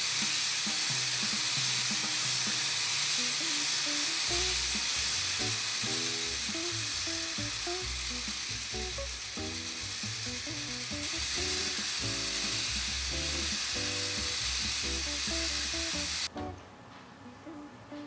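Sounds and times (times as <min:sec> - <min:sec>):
small motor and gears whirring: 0:00.0 - 0:16.3
background music: 0:04.3 - 0:18.0.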